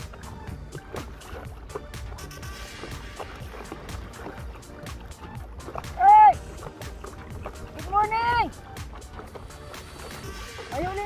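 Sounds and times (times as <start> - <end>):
background music with light beat: 0.0 - 11.0
man shouting: 6.0 - 6.4.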